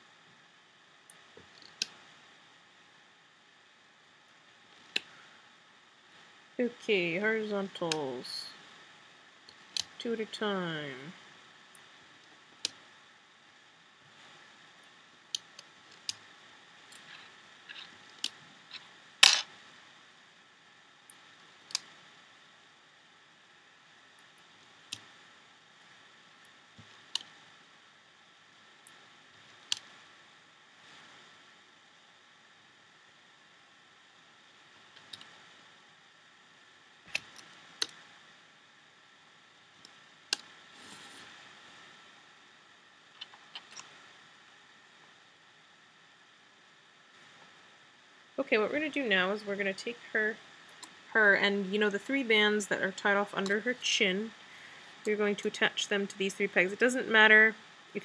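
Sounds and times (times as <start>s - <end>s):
faint steady hiss: 0.0s - 58.0s.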